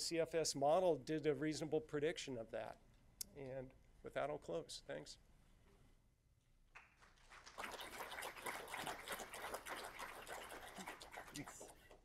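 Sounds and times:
audience applauding: 0:06.8 - 0:11.8.

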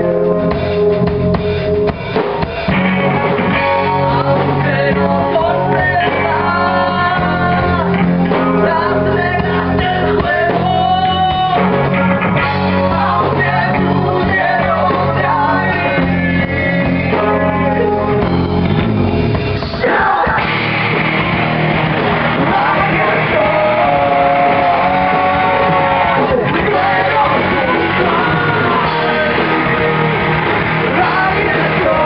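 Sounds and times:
bass guitar: 0:00.0 - 0:32.0
electric guitar: 0:00.0 - 0:32.0
live rock band playing: 0:00.0 - 0:32.0.

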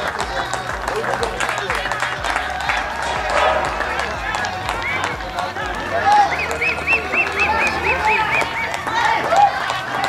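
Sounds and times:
spectators chattering: 0:00.0 - 0:10.0
short whistle-like notes: 0:06.2 - 0:08.8.

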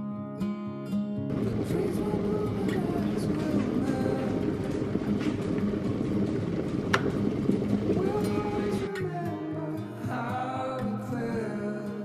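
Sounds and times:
electric kettle boiling: 0:01.3 - 0:09.7.

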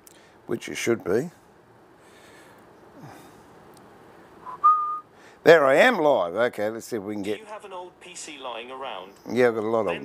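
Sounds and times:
person whistling: 0:04.4 - 0:05.1.

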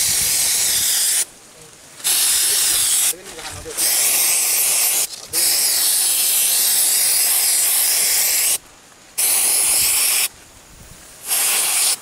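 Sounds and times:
aerosol spray hissing: 0:00.0 - 0:01.3, 0:02.0 - 0:08.6, 0:09.2 - 0:10.3, 0:11.2 - 0:12.0.

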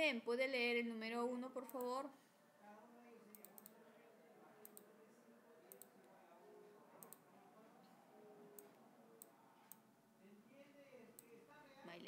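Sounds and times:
computer mouse clicks: 0:03.3 - 0:03.8, 0:04.6 - 0:04.9, 0:05.7 - 0:06.0, 0:07.0 - 0:07.2.

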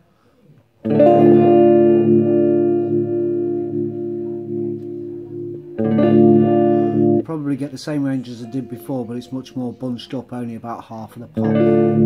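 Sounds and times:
electric guitar chord ringing: 0:00.8 - 0:10.3, 0:11.3 - 0:12.0.

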